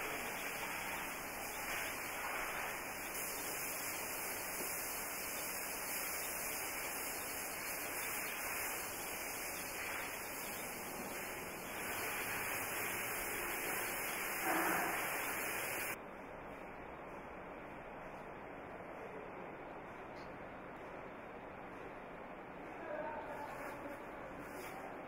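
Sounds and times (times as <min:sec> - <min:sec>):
steady background hiss: 0:00.0 - 0:25.0.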